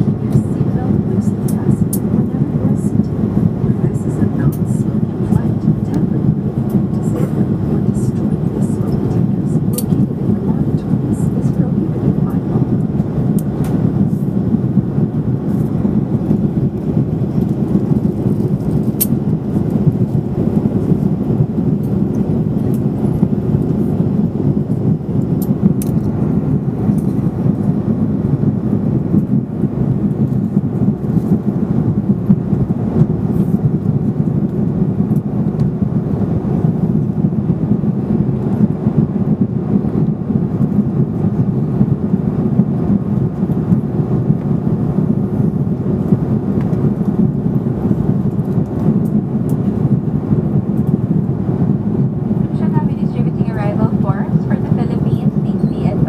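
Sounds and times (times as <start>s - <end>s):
jet airliner cabin rumble: 0.0s - 56.0s.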